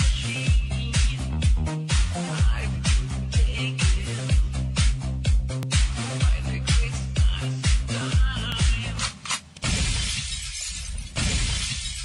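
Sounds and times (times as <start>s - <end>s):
glass-shattering crash effect: 9.6s - 12.0s.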